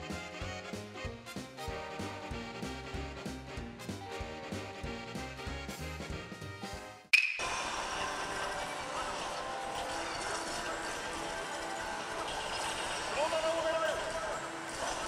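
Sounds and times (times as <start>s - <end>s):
swing brass music: 0.0s - 7.1s
slot machines jingles and effects: 8.0s - 14.8s.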